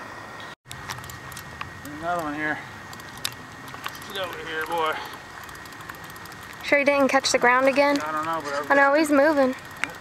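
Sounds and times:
faint clicks: 0:02.9 - 0:10.0.

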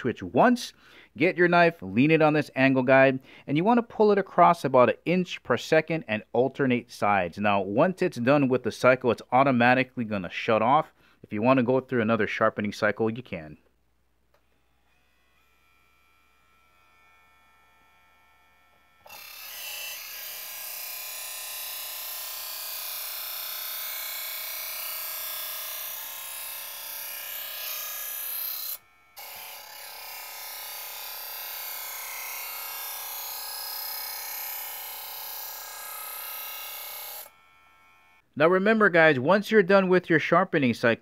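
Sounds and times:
knife sharpener motor running: 0:14.4 - 0:38.2.

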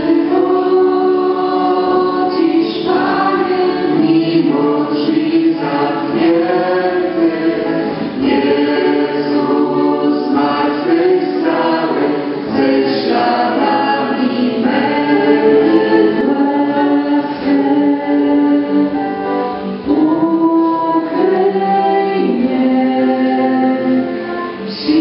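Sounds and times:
choir singing in harmony: 0:00.0 - 0:25.0.

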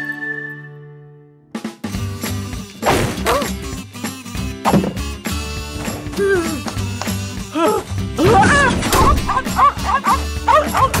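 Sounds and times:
cartoon music: 0:06.1 - 0:11.0.

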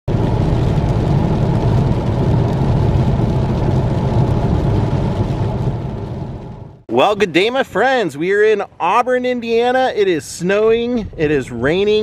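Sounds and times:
car engine and tyres rumbling: 0:00.1 - 0:12.0.

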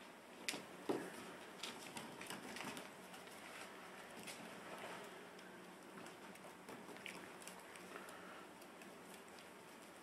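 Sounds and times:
puppy paws pattering on wood floor: 0:00.3 - 0:10.0.

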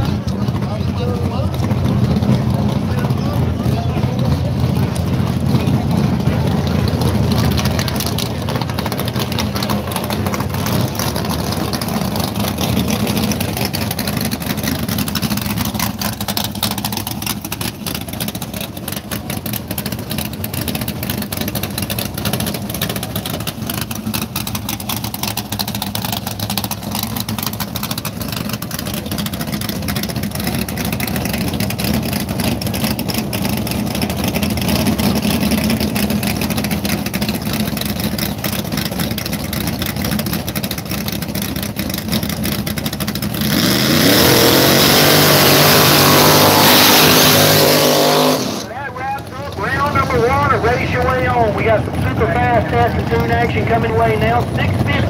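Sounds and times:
drag car engine rumbling: 0:00.0 - 0:55.0
engine revving hard: 0:43.3 - 0:48.7.

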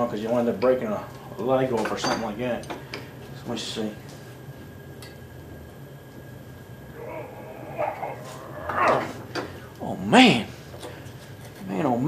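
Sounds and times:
steady low hum: 0:02.3 - 0:12.0
man straining and grunting: 0:06.9 - 0:09.2
man exclaiming oh: 0:07.0 - 0:09.2.

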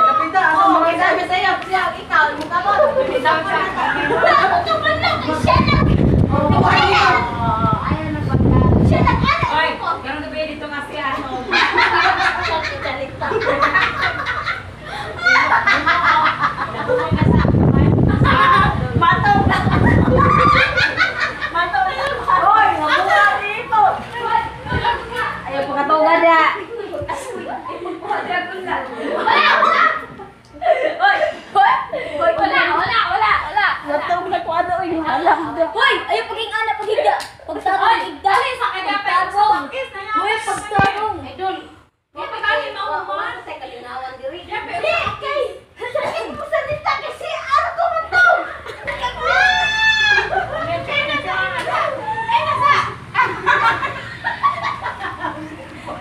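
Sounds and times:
people talking: 0:00.0 - 0:56.0.

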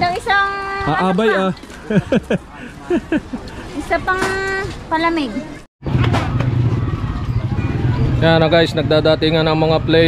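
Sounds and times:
small motorcycle engine running: 0:05.8 - 0:10.0.

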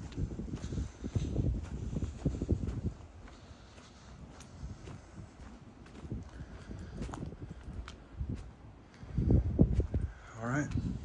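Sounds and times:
footsteps on stone paving: 0:00.0 - 0:11.0.

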